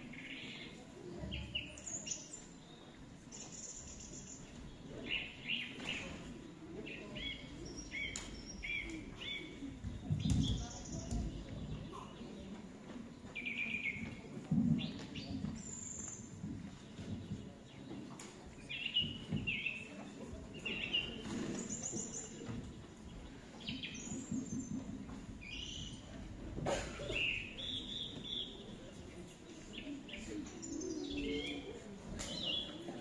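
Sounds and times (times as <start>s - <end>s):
murmur from hall: 0.0s - 33.0s
recorded birdsong chirps: 0.0s - 33.0s.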